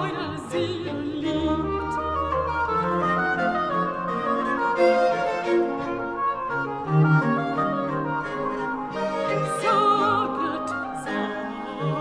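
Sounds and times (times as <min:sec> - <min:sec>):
strings and continuo playing: 0:00.0 - 0:12.0.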